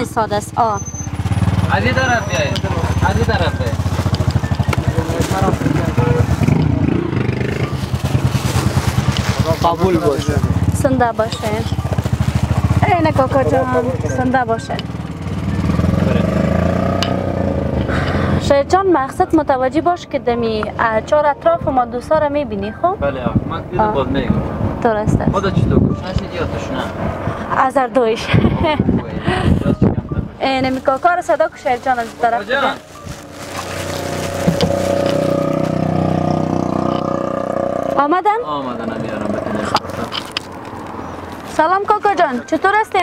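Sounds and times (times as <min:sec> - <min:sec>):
car engine running: 0:00.0 - 0:18.7, 0:30.6 - 0:37.2.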